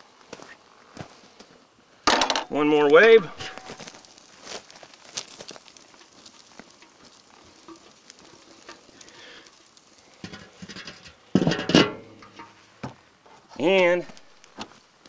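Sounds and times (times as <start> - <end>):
wood fire crackling and sizzling: 0.0 - 15.0
grill lid metallic clatter: 3.2 - 4.0, 10.2 - 12.7
small pops: 3.4 - 11.3.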